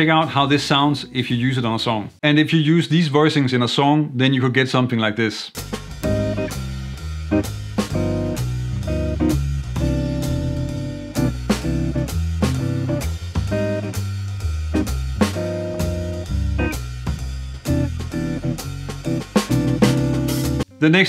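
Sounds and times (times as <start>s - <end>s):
drums: 0.0s - 1.2s, 5.5s - 21.0s
walking bass: 5.6s - 20.7s
electric guitar chord stabs: 6.0s - 14.0s, 14.7s - 16.9s, 17.6s - 20.9s.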